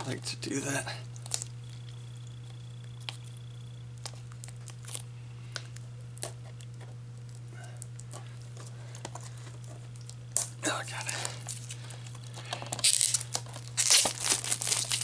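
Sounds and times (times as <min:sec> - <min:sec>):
steady low hum: 0:00.0 - 0:15.0
shrink wrap crinkling: 0:01.1 - 0:15.0.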